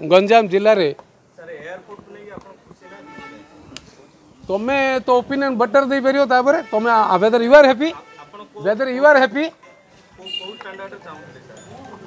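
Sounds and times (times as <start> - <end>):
man speaking emphatically: 4.5 - 9.6.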